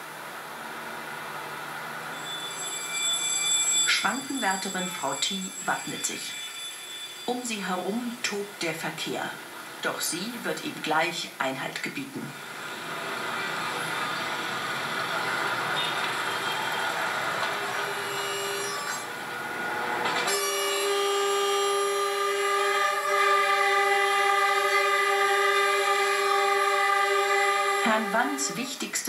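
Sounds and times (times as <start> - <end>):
street traffic: 0.0 - 4.6, 12.3 - 29.0
diesel locomotive horn: 14.9 - 29.0.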